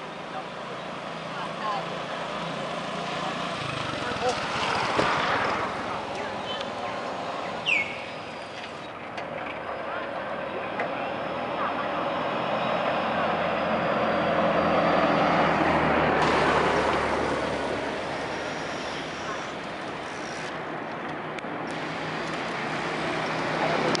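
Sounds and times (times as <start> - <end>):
diesel minibus driving past: 0.0 - 20.8
vehicle approaching: 0.0 - 24.0.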